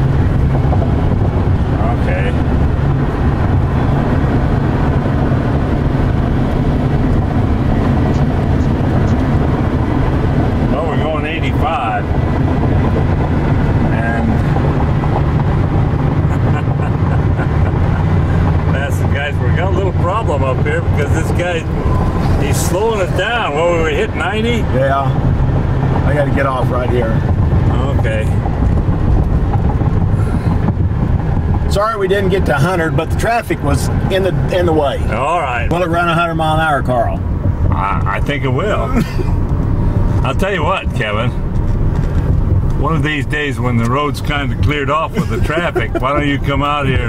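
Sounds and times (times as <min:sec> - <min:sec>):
road and wind noise in cab: 0:00.0 - 0:47.0
person speaking: 0:43.7 - 0:47.0.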